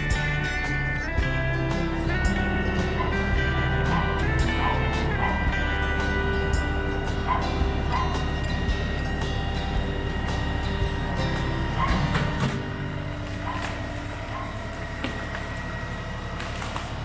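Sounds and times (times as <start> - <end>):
tractor diesel engine under load: 0.0 - 17.0
dog barking: 3.0 - 5.6, 7.2 - 8.3, 11.8 - 12.1, 13.4 - 14.6.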